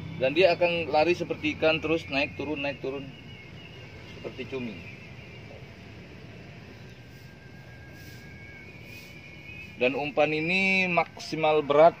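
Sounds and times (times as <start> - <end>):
thin high tones: 4.0 - 11.8.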